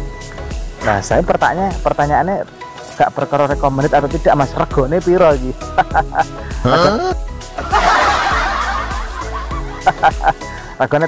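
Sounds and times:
background music with low notes: 0.0s - 11.0s
men laughing: 5.6s - 10.8s.

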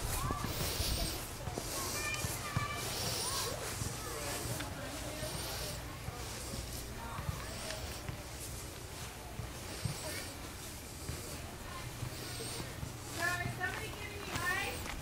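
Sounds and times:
faint distant voices: 0.0s - 15.0s.

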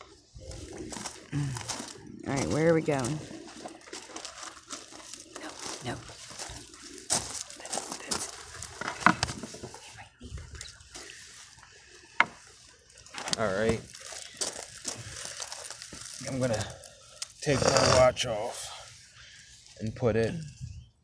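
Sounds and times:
footsteps crunching on gravel: 0.4s - 9.9s, 10.9s - 17.0s
rustling handling noise: 3.3s - 17.1s.

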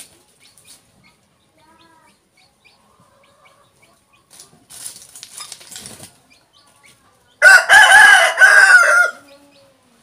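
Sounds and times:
rooster crowing: 7.4s - 9.2s.

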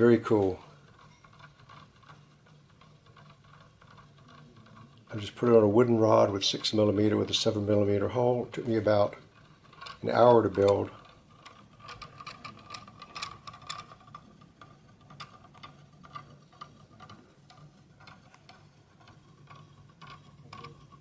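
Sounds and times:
rotor ticking and knocking on rod: 0.0s - 21.0s.

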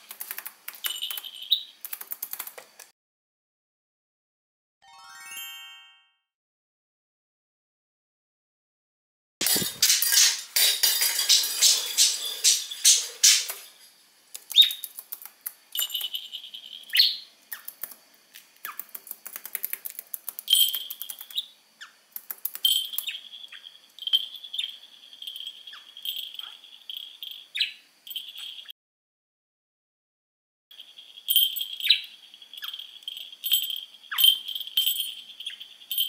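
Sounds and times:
budgerigar chirping: 16.8s - 17.7s, 27.5s - 28.6s, 31.7s - 32.9s.

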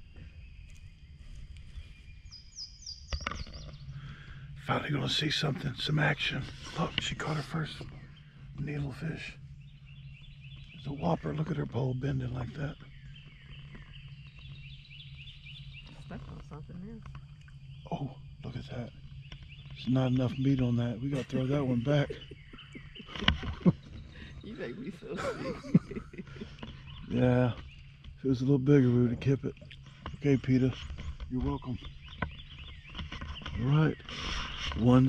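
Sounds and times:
low steady rumble: 0.0s - 35.0s
songbird chirping: 0.0s - 35.0s
steady low hum: 0.0s - 35.0s
quiet voices: 4.0s - 9.4s, 10.8s - 12.9s, 17.8s - 19.0s, 19.7s - 31.9s, 33.4s - 35.0s.

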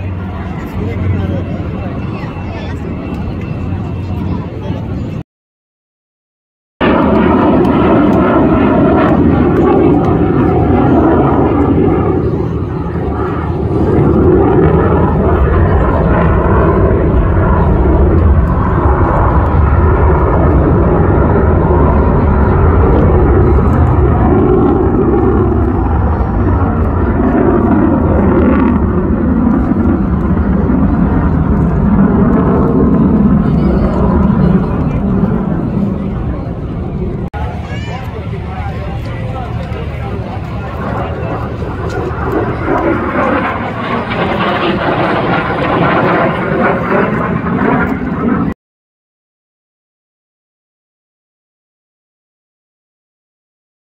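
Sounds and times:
jet engine rumble overhead: 0.0s - 5.2s, 6.8s - 48.6s.

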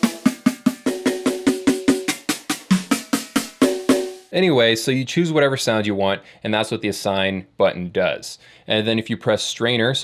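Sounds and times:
electronic snare drum hits: 0.0s - 4.3s.

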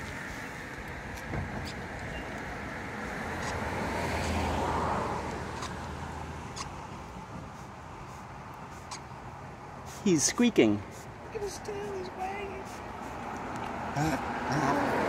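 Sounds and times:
car passing: 0.0s - 15.0s.

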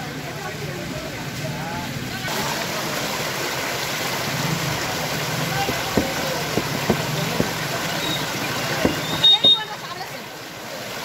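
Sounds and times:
rushing water hiss: 0.0s - 11.0s
sharp water splashes: 0.0s - 11.0s
feet wading through water: 2.3s - 10.1s.

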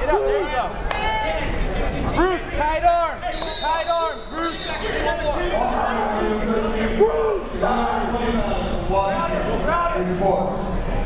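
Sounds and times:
background crowd noise: 0.0s - 11.0s
people talking and calling out: 0.0s - 11.0s.

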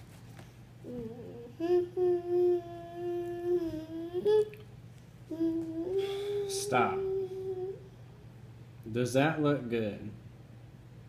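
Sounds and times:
person humming: 0.8s - 4.7s, 5.3s - 8.0s.

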